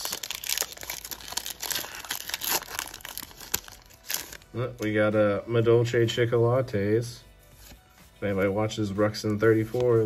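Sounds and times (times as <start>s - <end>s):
foil wrapper crinkling and tearing: 0.0s - 4.8s.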